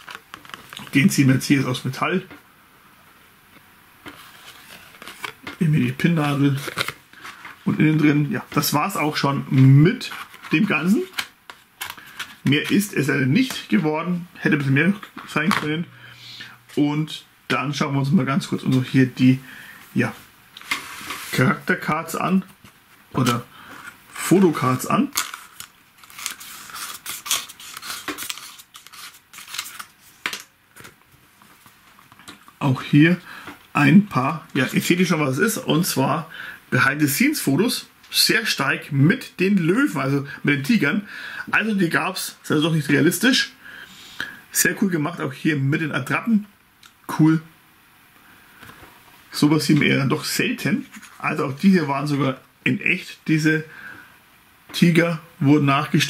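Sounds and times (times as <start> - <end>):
photo cards and paper rustling: 0.0 - 1.5, 4.0 - 15.8, 20.6 - 32.6, 50.7 - 51.7
fingers rustling on card: 23.2 - 30.9.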